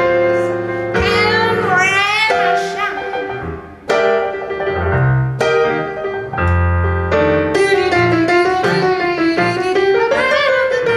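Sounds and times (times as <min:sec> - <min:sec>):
electric piano chords: 0:00.0 - 0:10.9.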